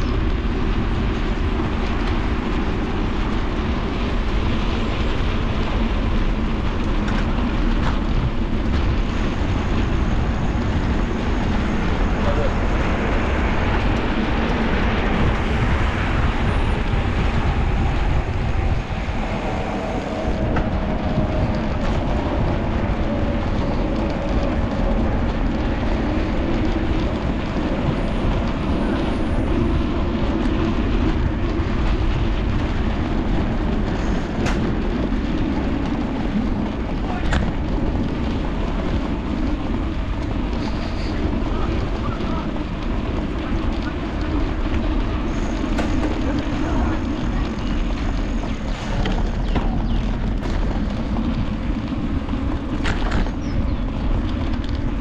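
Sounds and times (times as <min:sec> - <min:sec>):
bicycle tyres rolling: 0:00.0 - 0:55.0
wind rush: 0:00.0 - 0:55.0.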